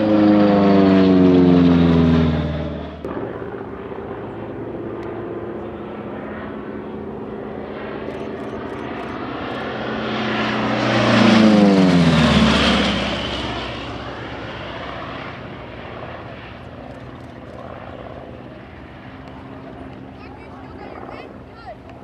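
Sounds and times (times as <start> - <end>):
propeller plane flyby: 0.0 - 22.0.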